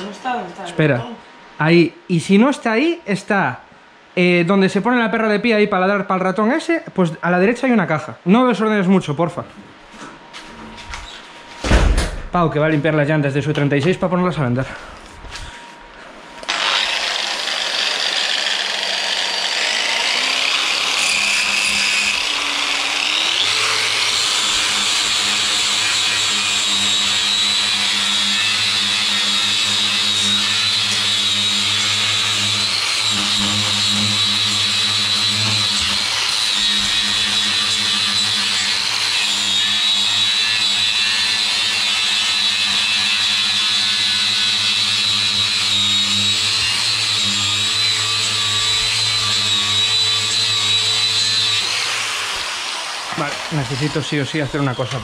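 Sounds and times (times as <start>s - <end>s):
angle grinder grinding metal: 16.4s - 55.0s.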